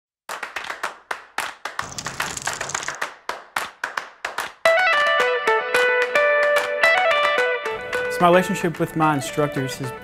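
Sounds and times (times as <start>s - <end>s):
rapid hand claps: 0.3s - 4.7s, 5.8s - 7.4s.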